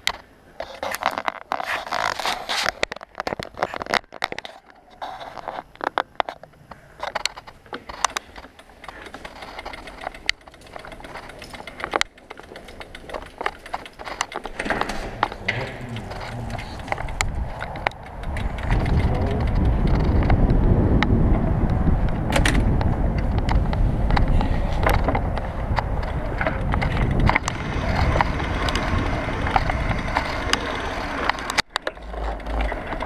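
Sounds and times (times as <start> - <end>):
camera handling scrapes and rustles: 0.6 - 6.4
sharp clicks: 5.7 - 21.1
low rumble: 15.0 - 33.0.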